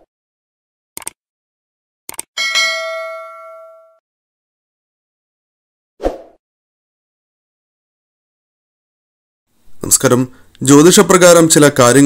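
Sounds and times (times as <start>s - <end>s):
short clicks: 1.0s - 1.2s, 2.1s - 2.3s
bright bell ding: 2.4s - 4.0s.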